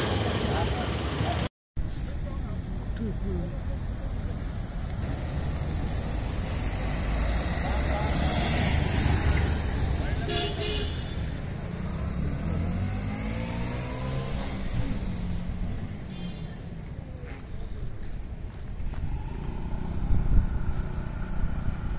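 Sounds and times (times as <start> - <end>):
motor scooter passing: 5.0 - 16.5, 18.5 - 21.9
steady low rumble: 17.8 - 21.9.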